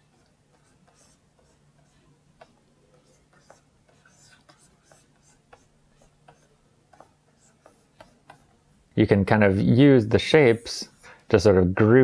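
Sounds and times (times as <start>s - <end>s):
stylus scratching on tablet: 0.0s - 8.8s, 10.5s - 11.1s.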